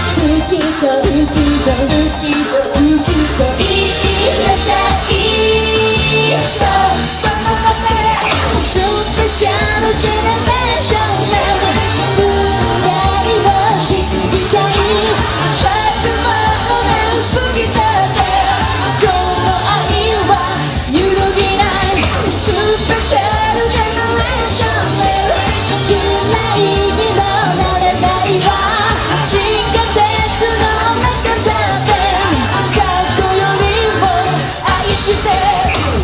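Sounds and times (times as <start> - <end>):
pop backing track with beat: 0.0 - 36.0
women singing into microphones: 0.0 - 36.0.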